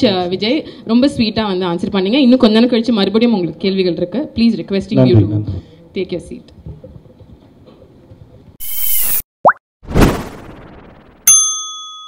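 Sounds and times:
rising swoop: 8.6 - 11.3
bell-like ding: 11.3 - 12.0.

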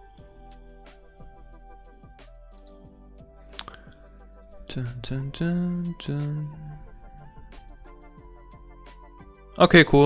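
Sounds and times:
quiet background music: 0.0 - 10.0
faint clicks: 2.5 - 2.8
man humming: 4.6 - 7.5.

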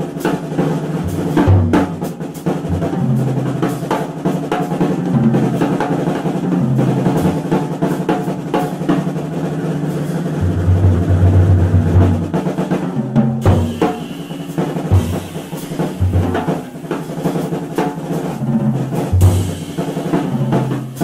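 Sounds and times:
drum strokes and rolls: 0.0 - 21.0
jazz trio playing: 0.0 - 21.0.

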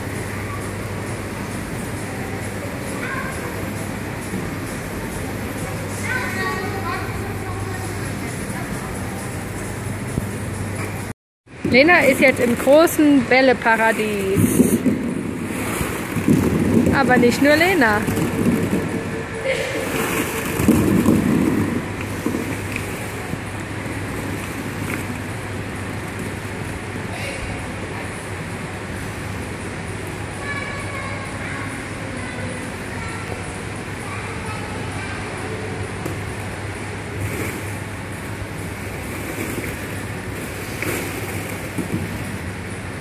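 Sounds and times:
distant voices in a play hall: 0.0 - 43.0.

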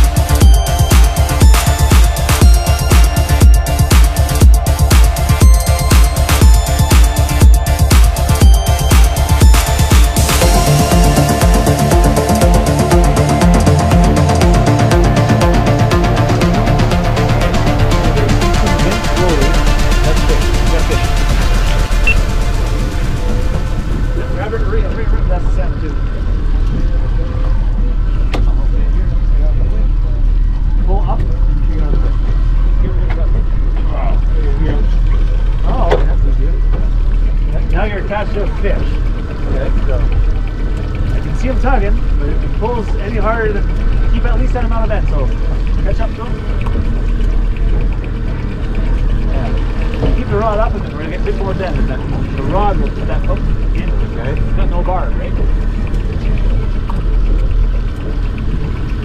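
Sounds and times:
boat motor rumbling: 0.0 - 59.0
hull on water: 0.0 - 59.0.

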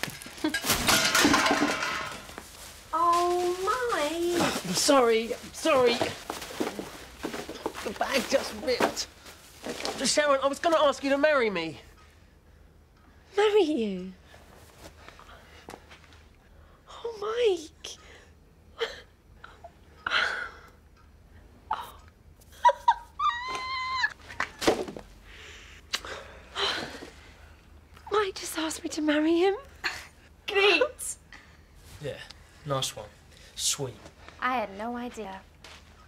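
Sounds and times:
woman squealing: 22.6 - 24.2.

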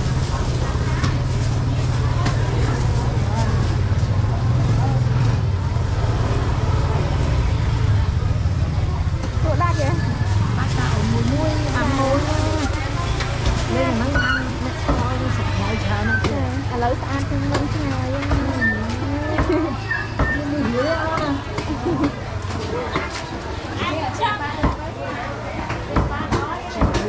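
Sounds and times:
people talking: 0.0 - 27.0.

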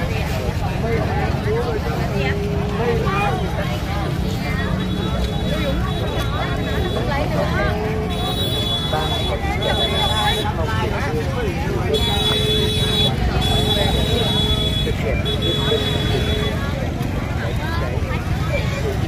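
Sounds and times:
crowd babble: 0.0 - 19.0.

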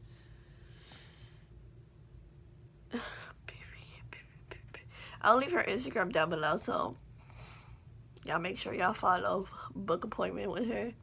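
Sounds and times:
woman whispering: 2.9 - 5.6.

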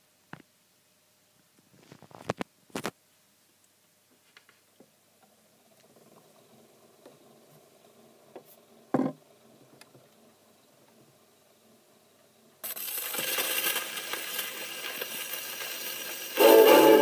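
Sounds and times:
record surface crackle and hiss: 0.0 - 17.0
record needle set down: 1.8 - 3.0.

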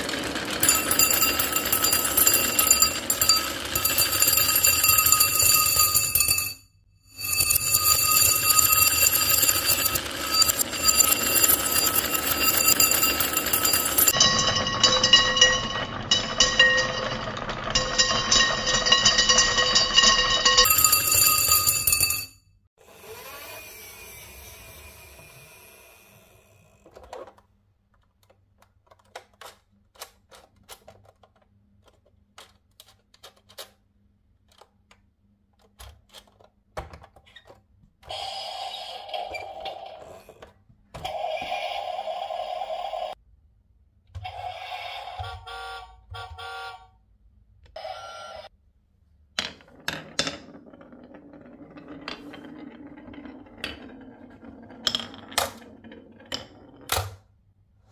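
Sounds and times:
marbles clicking and clacking: 0.0 - 6.3, 7.2 - 22.2
marbles rolling on wooden run: 0.0 - 6.5, 7.2 - 22.2, 49.4 - 57.0
marbles ringing tones: 0.6 - 6.5, 7.1 - 22.3.

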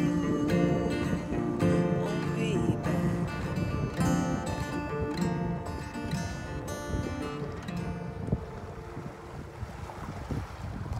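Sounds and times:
guitar chord ringing: 0.0 - 9.4
wind buffeting microphone: 0.0 - 10.9.

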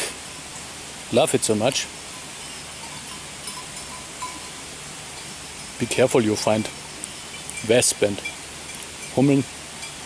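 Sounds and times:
steady outdoor hiss: 0.0 - 10.0
distant cowbells clinking: 1.4 - 10.0.

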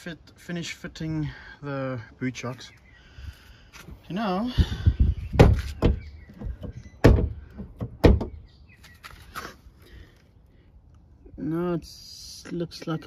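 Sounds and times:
car tailgate thudding: 5.3 - 8.4.

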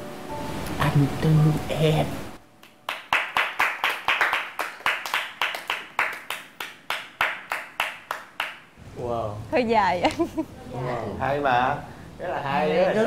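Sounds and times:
group hand clapping: 2.6 - 8.7.

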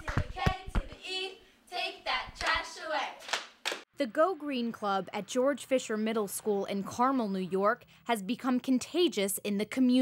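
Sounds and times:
girls chanting: 0.0 - 3.3
hand claps: 3.2 - 3.9.

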